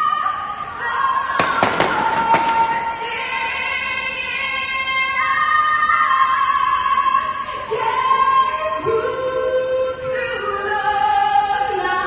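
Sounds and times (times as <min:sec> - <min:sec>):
woman singing over loudspeakers: 0:00.0 - 0:12.0
firework bangs: 0:01.3 - 0:03.4.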